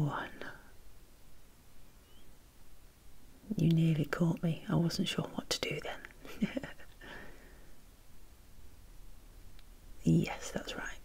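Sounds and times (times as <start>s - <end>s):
woman whispering breathily: 0.0s - 0.7s, 10.1s - 11.0s.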